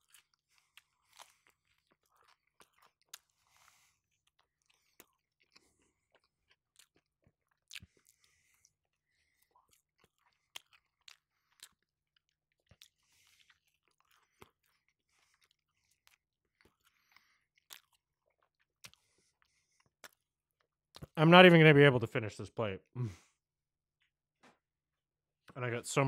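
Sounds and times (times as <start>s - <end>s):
person chewing food: 0.0s - 21.2s.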